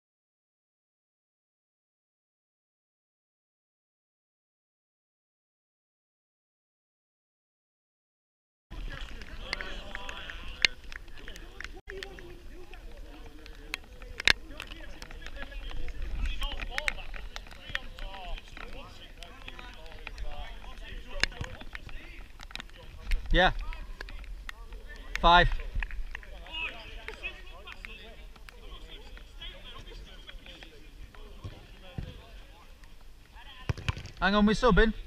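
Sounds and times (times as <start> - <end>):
players shouting: 8.7 - 22.4
football being kicked: 33.6 - 34.2.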